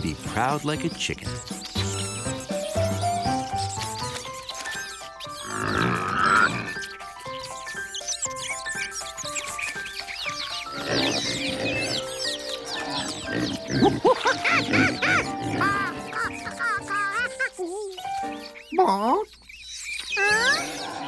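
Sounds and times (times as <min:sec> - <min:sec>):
cartoon background music: 0:00.0 - 0:21.0
cartoon chicks chirping: 0:00.0 - 0:21.0
squeaky animal calls: 0:00.0 - 0:21.0.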